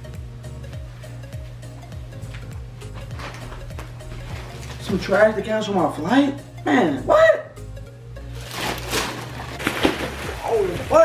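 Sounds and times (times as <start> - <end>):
background music with bass: 0.0 - 11.0
plastic bag rustling: 3.1 - 5.2, 8.3 - 11.0
plastic bag crackling as it lands: 8.4 - 11.0.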